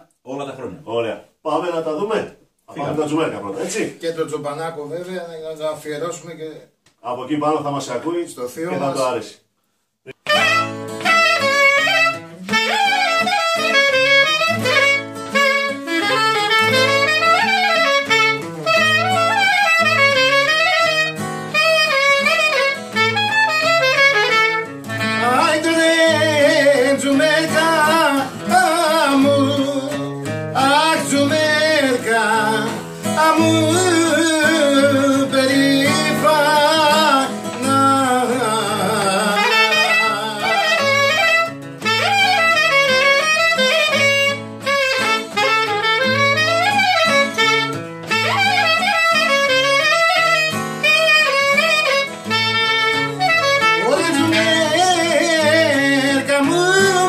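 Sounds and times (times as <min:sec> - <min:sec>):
clarinet melody: 0:10.1 - 0:57.0
strummed acoustic guitar: 0:10.2 - 0:57.0
man singing with vibrato: 0:25.0 - 0:41.5, 0:53.6 - 0:57.0.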